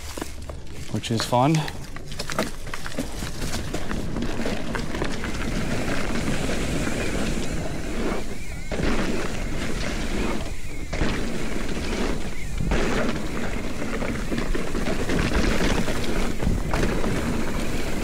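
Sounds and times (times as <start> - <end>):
bike tyres rolling over dirt: 0.0 - 18.0.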